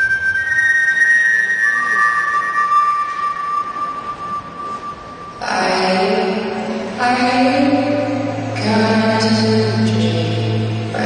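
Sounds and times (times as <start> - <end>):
long held high notes: 0.0 - 11.0.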